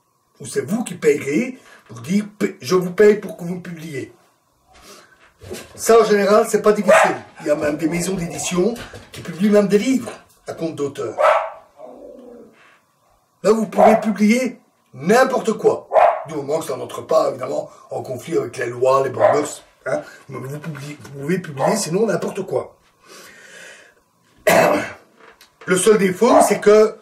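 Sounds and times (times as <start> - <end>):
faint breath: 4.7 - 5.3, 23.0 - 24.0
dog barking sharply: 6.9 - 7.3, 11.2 - 11.7, 13.8 - 14.1, 15.9 - 16.3, 26.3 - 26.6
man coughing: 24.4 - 25.0.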